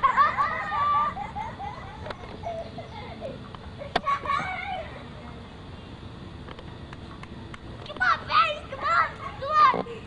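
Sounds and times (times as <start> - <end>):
young child calling out: 7.9 - 9.9.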